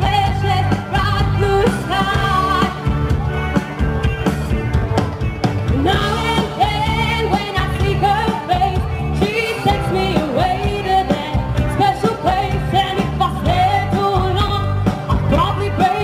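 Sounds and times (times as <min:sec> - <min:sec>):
bass guitar: 0:00.0 - 0:16.0
electric guitars: 0:00.0 - 0:16.0
person singing: 0:05.7 - 0:16.0.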